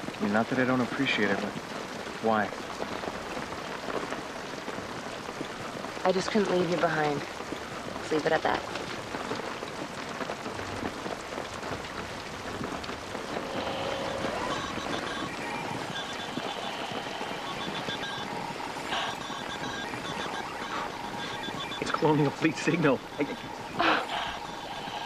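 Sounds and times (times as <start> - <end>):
steady rain falling: 0.0 - 25.0
choppy electronic tones: 13.2 - 25.0.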